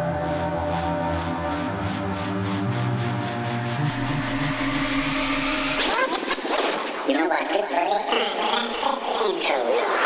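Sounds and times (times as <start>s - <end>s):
rising synth sweep: 0.0s - 6.5s
psytrance track: 0.0s - 7.1s.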